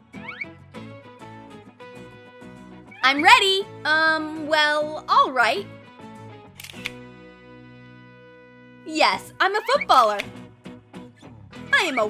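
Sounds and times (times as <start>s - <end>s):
background music: 0.0s - 12.0s
camera shutter clicking: 6.6s - 7.0s.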